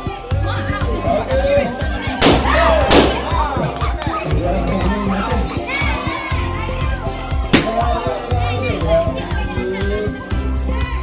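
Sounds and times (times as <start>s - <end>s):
background music: 0.0s - 11.0s
crowd shouting and cheering: 0.0s - 11.0s.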